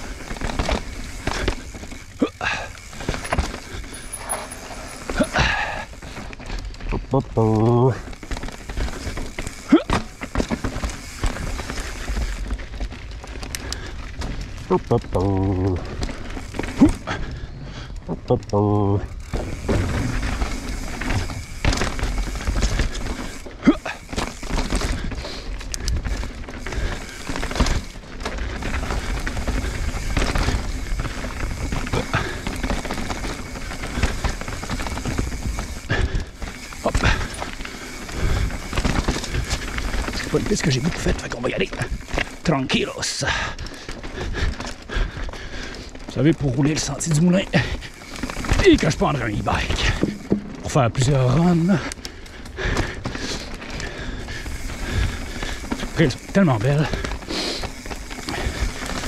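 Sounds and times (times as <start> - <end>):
bike wheels knocking on rocks: 0.0 - 17.3, 18.6 - 44.8, 45.9 - 59.0
bike tyre and wind noise: 0.0 - 59.0.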